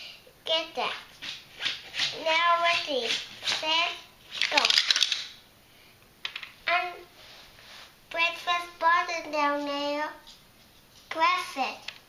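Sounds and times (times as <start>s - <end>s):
toy car rattling down plastic track: 4.4s - 5.3s.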